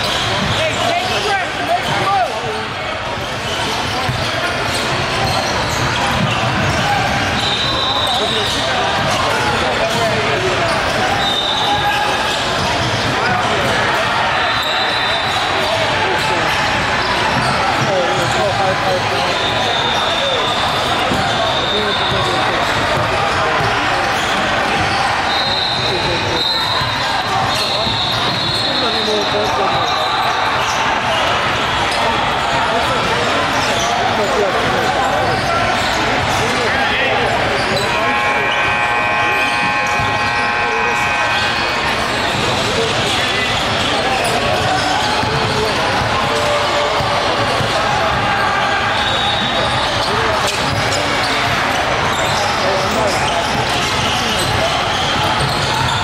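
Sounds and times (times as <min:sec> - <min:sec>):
voices echoing in a hall: 0:00.0 - 0:56.0.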